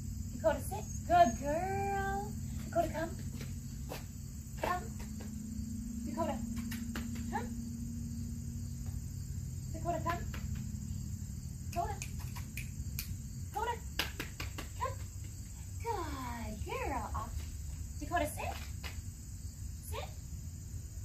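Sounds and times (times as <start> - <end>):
high-pitched insect chorus: 0.0 - 21.0
low steady hum: 0.0 - 21.0.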